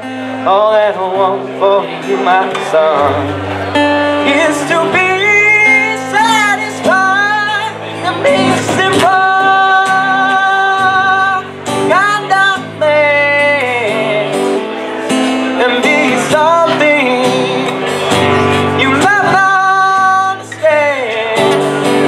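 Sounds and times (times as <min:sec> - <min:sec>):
strummed acoustic guitar: 0:00.0 - 0:22.0
man singing through a pa: 0:00.3 - 0:03.4, 0:04.1 - 0:14.6, 0:15.2 - 0:22.0.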